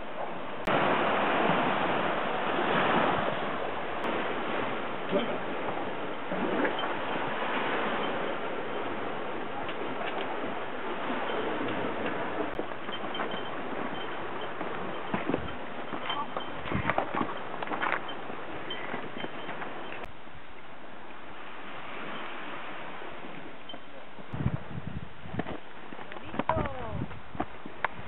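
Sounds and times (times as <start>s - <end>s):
wind on microphone: 0.0s - 20.1s, 21.2s - 28.0s
sea surf: 0.0s - 24.4s
footsteps and poles striking rock: 14.6s - 18.2s.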